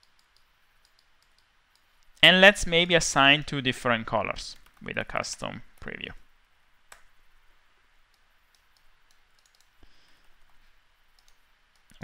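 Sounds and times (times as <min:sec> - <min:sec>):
computer mouse and keyboard clicks: 0:00.0 - 0:02.2, 0:08.1 - 0:09.8, 0:11.1 - 0:12.0.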